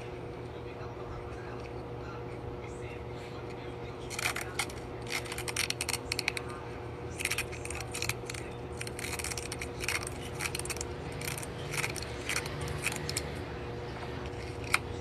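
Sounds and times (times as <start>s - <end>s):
scissors snipping paper cup: 4.1s - 6.5s, 7.2s - 13.4s, 14.2s - 15.0s.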